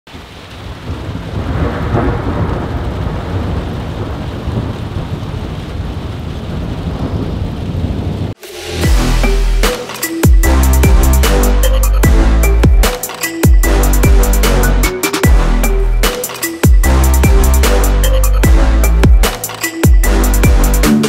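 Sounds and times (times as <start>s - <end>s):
thunder rumbling: 0.1s - 9.6s
steady rain: 0.1s - 21.0s
electronic music with heavy bass: 8.4s - 21.0s.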